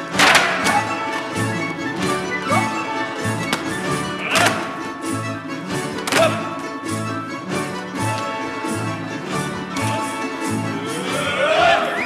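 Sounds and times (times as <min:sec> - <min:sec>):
folk choir music: 0:00.0 - 0:12.0
sharp knocks: 0:00.1 - 0:00.8.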